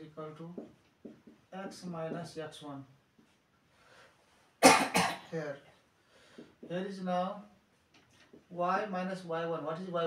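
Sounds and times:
man coughing: 4.6 - 5.4.

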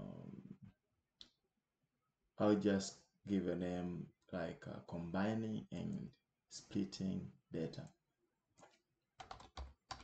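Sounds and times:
typing on keyboard: 9.2 - 10.0.

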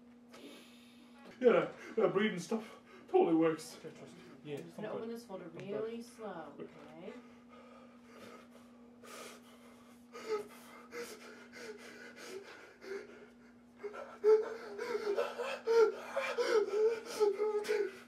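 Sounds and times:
man whimpering and gasping: 10.0 - 18.0.

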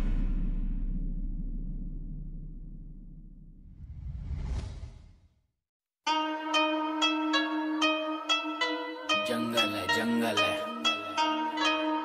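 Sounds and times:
whoosh with deep rumble: 0.0 - 5.4.

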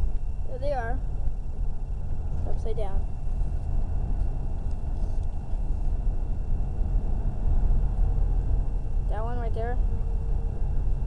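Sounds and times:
car cabin road noise: 0.0 - 11.0.

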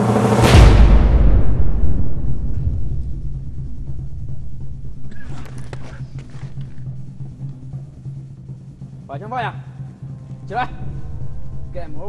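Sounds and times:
background music: 0.0 - 12.0
low rumble: 0.0 - 12.0
heavy impact thud: 0.4 - 7.1.

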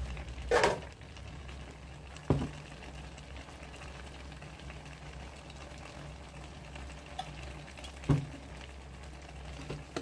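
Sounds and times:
food bubbling in a wok: 0.0 - 10.0.

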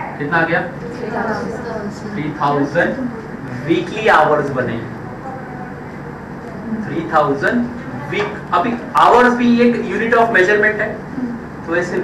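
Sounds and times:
classroom room noise: 0.0 - 12.0
faint voices: 0.8 - 9.2
man talking: 2.2 - 5.0, 6.9 - 11.0.

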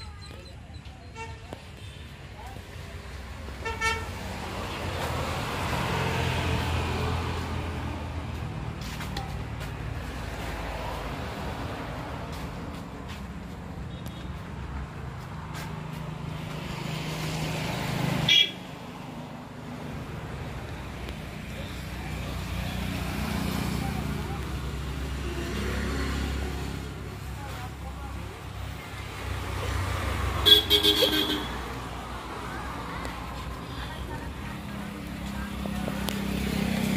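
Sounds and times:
vehicle engine rumble: 0.0 - 36.9.

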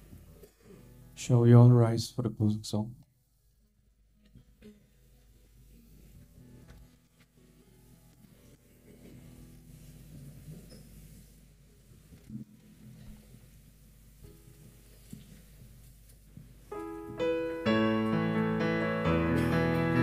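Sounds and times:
piano chords on keyboard: 16.7 - 20.0.

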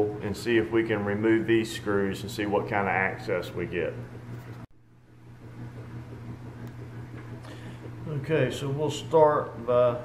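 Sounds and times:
low room tone hum: 0.0 - 10.0.

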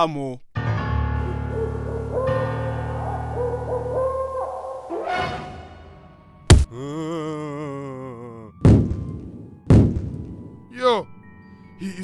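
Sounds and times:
heavy impact thuds: 6.5 - 6.7, 8.6 - 10.5.

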